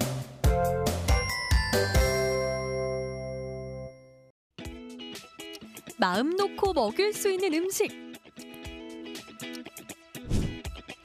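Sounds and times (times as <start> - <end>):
bell-like chime ringing: 1.2 - 4.3.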